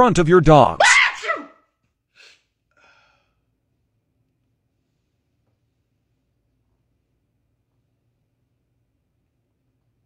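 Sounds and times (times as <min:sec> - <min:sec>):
man fake sneezing: 0:00.8 - 0:01.5.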